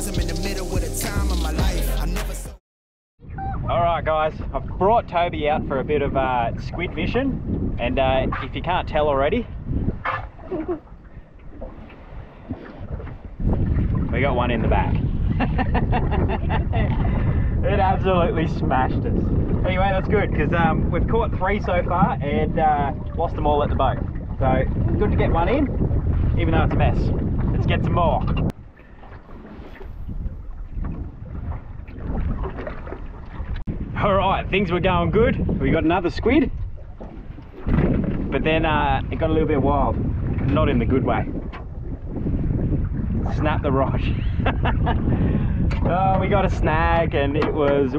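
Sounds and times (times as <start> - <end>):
wind buffeting microphone: 3.2 - 47.9
water lapping against metal hull: 5.8 - 47.9.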